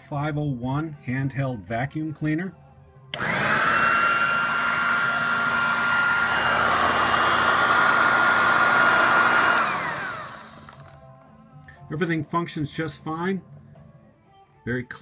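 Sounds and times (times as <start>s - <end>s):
handheld vacuum cleaner whining: 3.1s - 11.0s.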